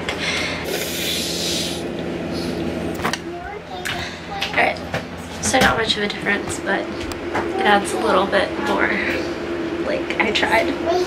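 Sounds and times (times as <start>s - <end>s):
aerosol spray hissing: 0.7s - 1.8s.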